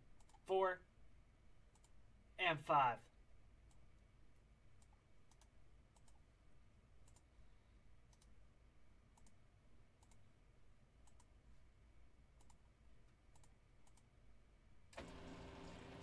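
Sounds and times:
computer mouse clicks: 0:00.2 - 0:00.4, 0:01.7 - 0:02.0, 0:04.8 - 0:06.2, 0:07.0 - 0:07.3, 0:08.1 - 0:08.4, 0:09.1 - 0:09.4, 0:10.0 - 0:10.3, 0:11.0 - 0:11.4, 0:12.4 - 0:14.1.

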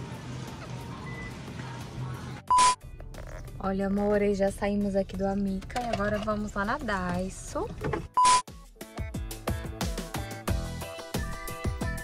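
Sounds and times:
faint background music: 0:00.0 - 0:08.2.

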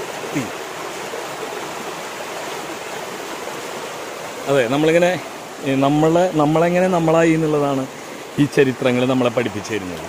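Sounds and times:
stream rushing over rocks: 0:00.0 - 0:10.0.

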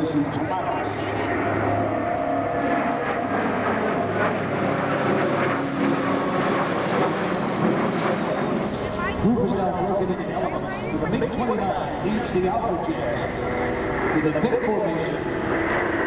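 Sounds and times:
faint voices: 0:00.0 - 0:16.0.

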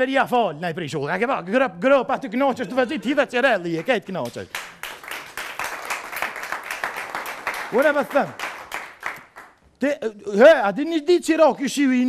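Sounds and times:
man talking quickly: 0:00.0 - 0:04.5, 0:07.7 - 0:08.4
audience applause: 0:04.5 - 0:09.5.

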